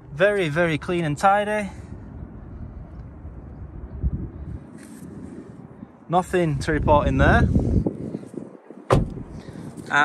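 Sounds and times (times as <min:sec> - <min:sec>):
wind rumble: 0:00.0 - 0:10.0
soft thump: 0:08.9 - 0:09.3.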